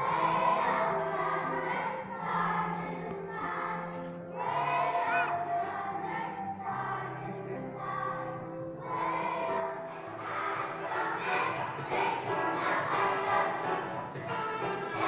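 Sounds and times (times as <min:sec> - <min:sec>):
children's choir singing: 0:00.0 - 0:15.0
instrumental accompaniment: 0:00.0 - 0:15.0.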